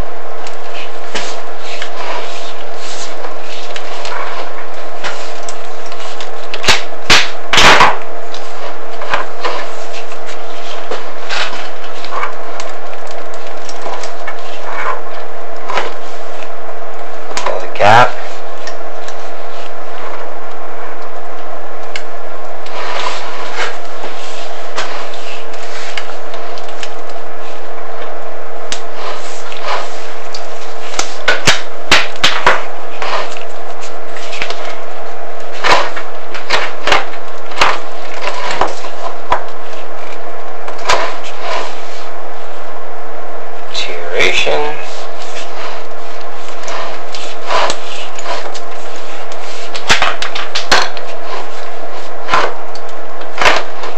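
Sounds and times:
loud steady hum: 0:00.0 - 0:53.9
camera knocking and scraping in flue: 0:00.6 - 0:16.5, 0:35.4 - 0:42.0.

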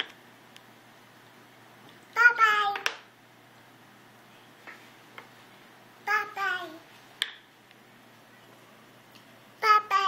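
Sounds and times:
baby saying bye-bye: 0:06.1 - 0:06.8, 0:09.6 - 0:10.0.

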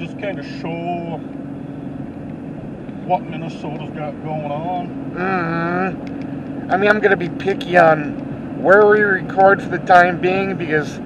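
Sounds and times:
constant low hum: 0:00.0 - 0:11.0
road and engine noise in cabin: 0:00.0 - 0:11.0.

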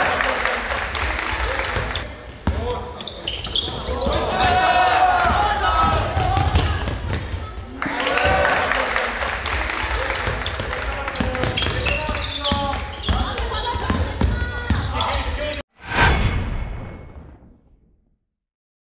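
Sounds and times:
players calling out: 0:00.0 - 0:15.6
basketball bouncing on court: 0:05.2 - 0:07.6, 0:10.2 - 0:15.3
deep boom: 0:15.8 - 0:18.2.

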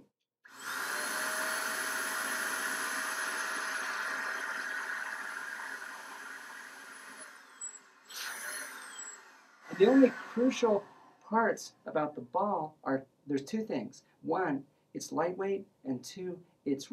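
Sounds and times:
electric air blower running: 0:00.5 - 0:11.0.

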